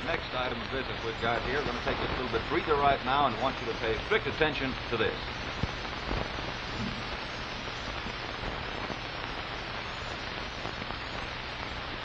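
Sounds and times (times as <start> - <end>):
film soundtrack hiss: 0.0 - 12.0
low hum: 4.8 - 11.2.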